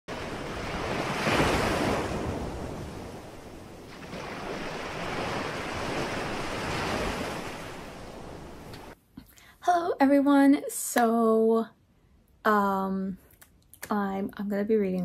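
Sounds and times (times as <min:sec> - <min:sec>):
waves breaking on beach: 0:00.1 - 0:09.0.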